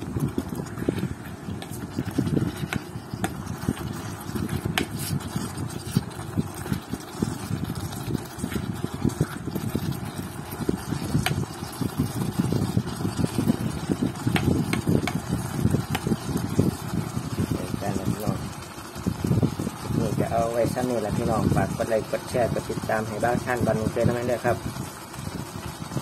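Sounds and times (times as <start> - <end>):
ladle stirring thick curry: 0.0 - 17.4.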